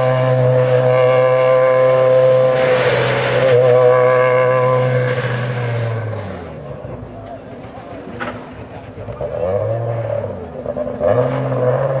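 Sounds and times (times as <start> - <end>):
rally car engine accelerating: 0.0 - 12.0.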